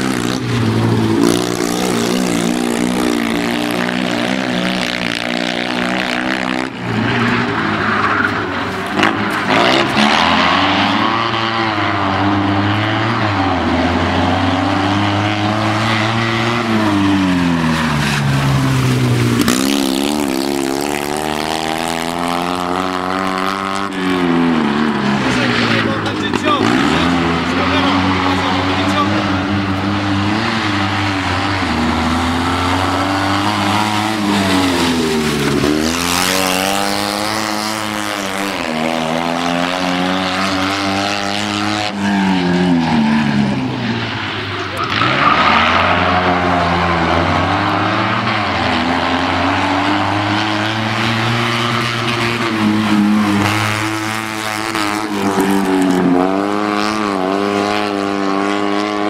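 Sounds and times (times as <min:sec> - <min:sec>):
small car engine revving: 0:08.8 - 0:59.0.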